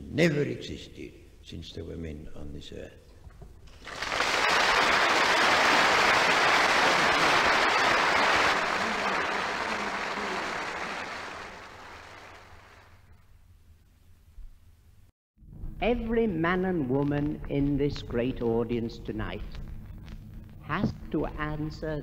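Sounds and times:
large audience applauding: 3.7s - 13.2s.

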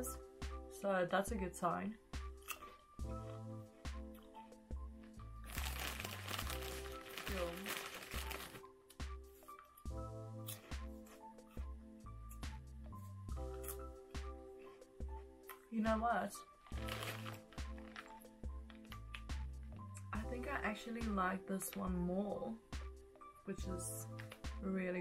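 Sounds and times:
background music with bass line: 1.4s - 21.3s
crisp packet crinkling: 5.4s - 8.6s, 16.7s - 19.2s.

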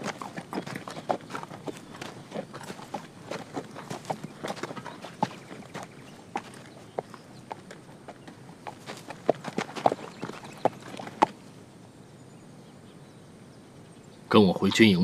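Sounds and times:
people's footsteps: 0.0s - 11.4s
donkey hooves on gravel: 0.0s - 11.6s.

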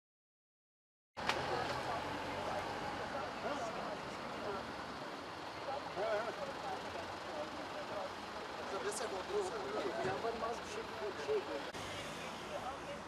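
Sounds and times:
distant people talking: 1.2s - 13.0s
vehicle and street noise: 1.2s - 13.0s.

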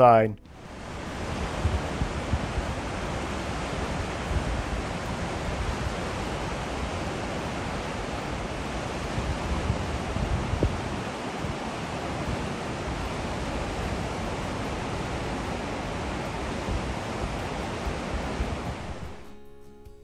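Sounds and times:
river rapids rushing: 0.0s - 19.5s
wind buffeting microphone: 0.5s - 19.3s.

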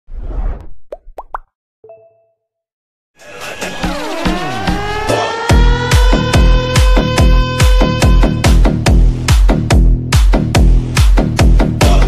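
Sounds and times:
whoosh: 0.1s - 0.8s.

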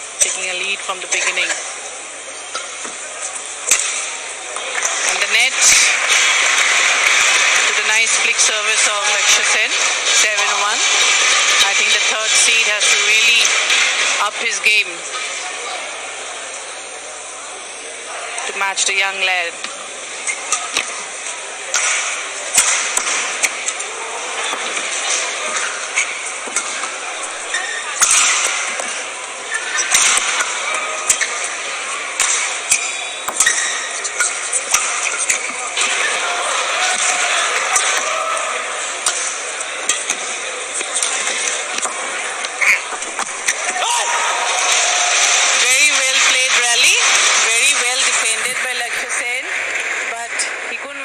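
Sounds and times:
crowd voices: 0.0s - 51.0s
racket striking shuttlecock: 3.7s - 4.2s, 21.7s - 23.8s, 32.2s - 35.9s.

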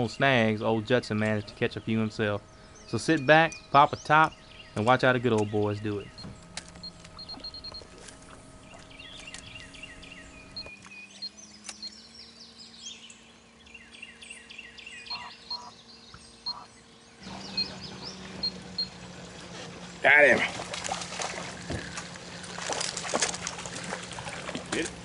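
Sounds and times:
birds chirping and singing: 0.0s - 25.0s
faint steady hum: 0.0s - 25.0s.

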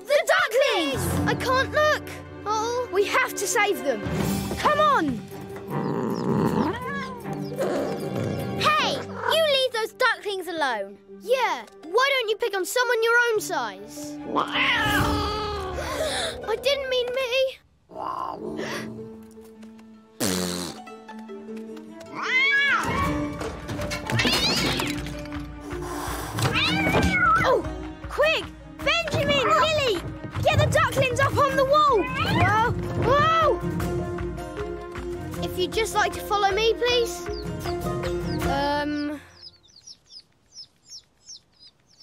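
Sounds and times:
background music: 0.0s - 40.6s
cartoon ducklings peeping: 37.2s - 42.0s.

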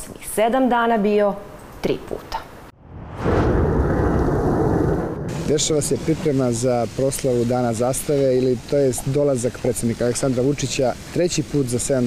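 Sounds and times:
jet engine rumble overhead: 3.0s - 11.2s.

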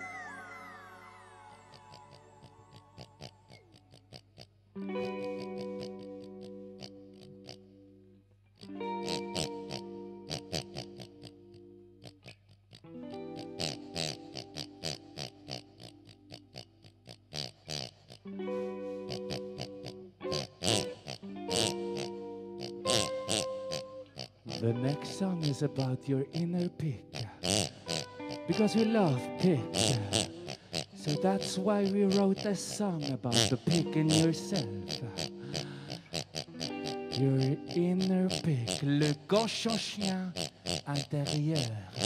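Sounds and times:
falling pitch sweeps: 0.0s - 2.5s
pig-like oinking into microphone: 0.0s - 7.7s, 8.6s - 18.3s, 19.0s - 42.0s
held keyboard chords: 4.8s - 12.0s, 12.9s - 16.8s, 18.3s - 40.4s.

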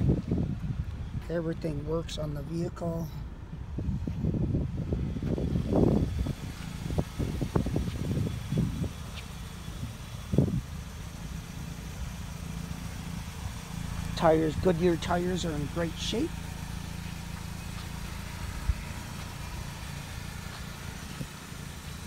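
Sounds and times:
wind rumbling on microphone: 0.0s - 12.4s.

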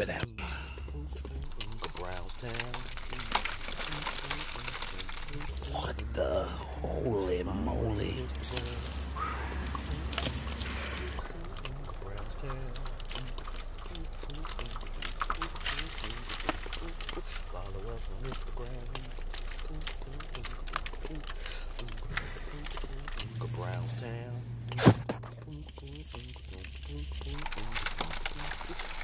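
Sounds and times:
debris crackling and rustling: 0.0s - 29.0s
low steady hum: 0.0s - 29.0s.

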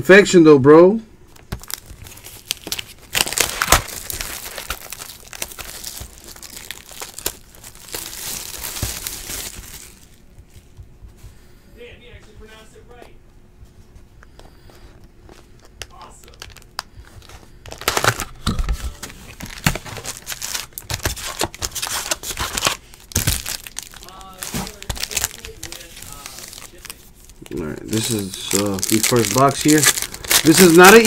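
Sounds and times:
foil packs crinkling: 1.4s - 10.7s, 15.2s - 31.0s.

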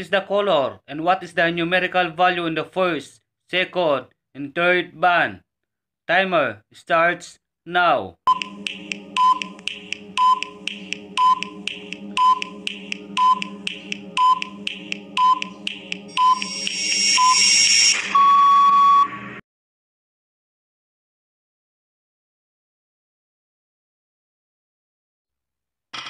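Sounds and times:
timer ticks: 8.3s - 17.4s
tense drone: 8.3s - 18.2s
short beeps: 9.2s - 9.5s, 10.2s - 10.5s, 11.2s - 11.5s, 12.2s - 12.5s, 13.2s - 13.5s, 14.2s - 14.5s, 15.2s - 15.5s, 16.2s - 19.2s
buzzer tone: 16.1s - 19.2s.

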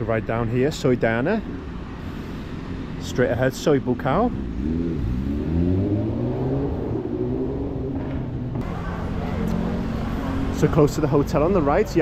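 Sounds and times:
traffic hum: 0.0s - 12.0s
vehicle engine accelerating: 4.0s - 11.8s.

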